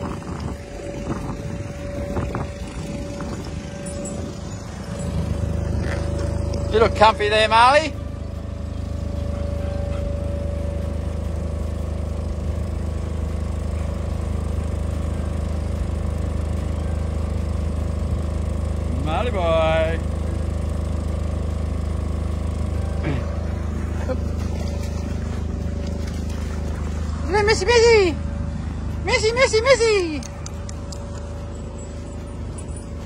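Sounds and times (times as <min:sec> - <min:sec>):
low motor drone: 0:00.0 - 0:33.0.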